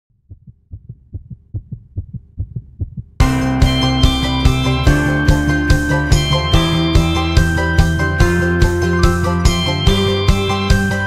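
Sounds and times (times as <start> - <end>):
heartbeat thumps: 0.1 - 4.6
band with guitars and drums: 3.2 - 11.0.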